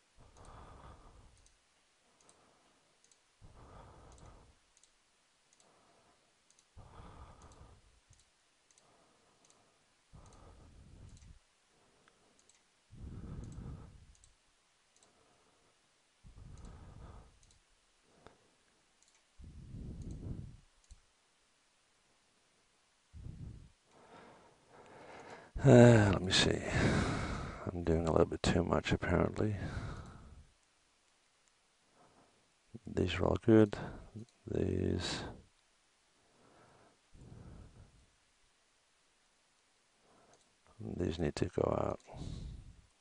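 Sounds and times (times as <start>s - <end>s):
person breathing close: 0.2s - 4.6s, 5.6s - 8.0s, 8.8s - 14.2s, 15.0s - 18.7s, 19.4s - 20.6s, 23.1s - 27.7s, 29.5s - 30.5s, 33.8s - 34.3s, 36.2s - 38.1s, 42.1s - 42.9s
computer mouse clicks: 0.3s - 1.6s, 2.2s - 3.3s, 3.9s - 5.7s, 6.4s - 11.4s, 12.0s - 12.7s, 13.3s - 15.2s, 16.5s - 21.1s, 39.6s - 40.6s.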